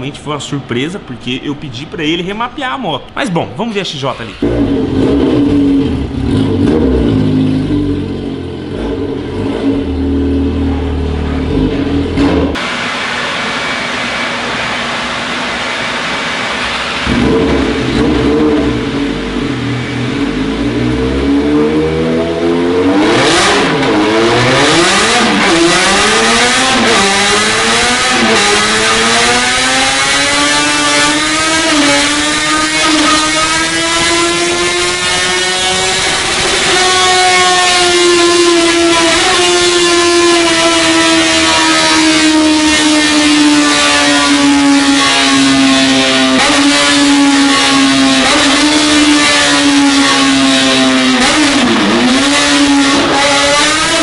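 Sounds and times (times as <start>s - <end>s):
motorcycle engine revving: 4.3s - 12.7s, 16.6s - 54.0s.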